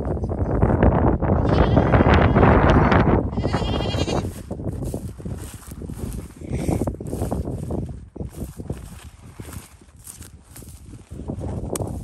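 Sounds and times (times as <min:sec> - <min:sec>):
goats bleating: 0:01.4 - 0:02.4, 0:03.3 - 0:04.4
rustling and steps in dry grass: 0:04.0 - 0:12.0.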